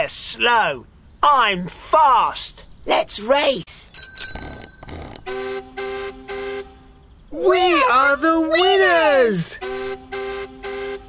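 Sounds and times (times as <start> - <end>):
short horn toots: 4.4 - 6.9.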